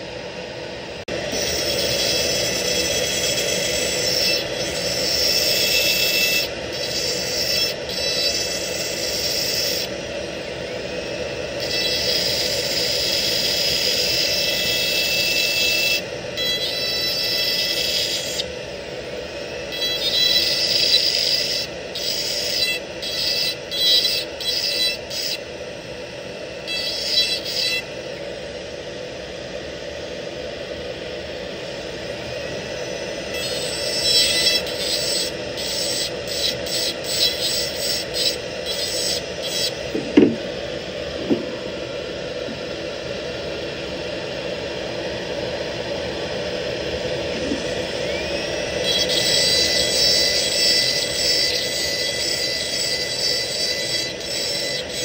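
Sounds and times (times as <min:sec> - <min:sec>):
dental handpiece grinding metal: 0:01.2 - 0:10.0, 0:11.4 - 0:18.5, 0:19.3 - 0:25.5, 0:26.6 - 0:27.9, 0:33.2 - 0:40.5, 0:47.3 - 0:55.0.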